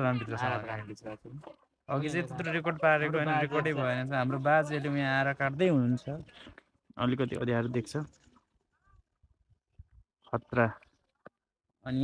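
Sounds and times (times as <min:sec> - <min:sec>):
man speaking: 0:00.0 - 0:06.2.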